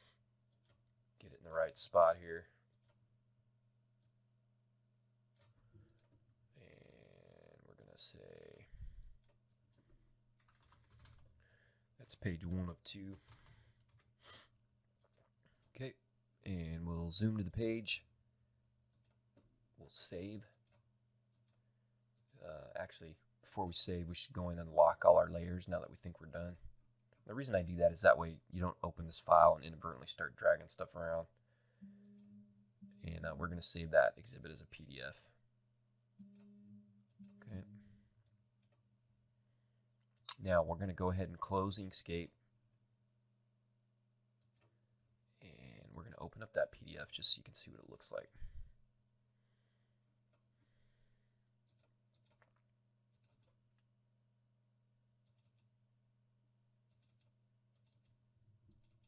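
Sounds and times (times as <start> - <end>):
typing on computer keyboard: 9.2 - 11.3, 51.7 - 53.6, 56.9 - 59.0
low steady hum: 21.0 - 42.5.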